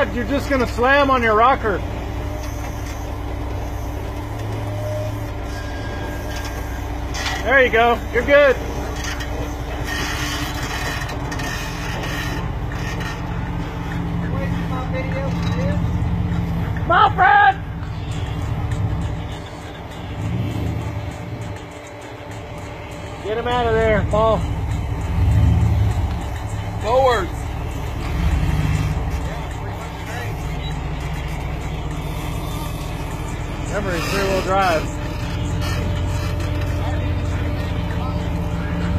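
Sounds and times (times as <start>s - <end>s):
car engine running at low revs: 0.0s - 38.9s.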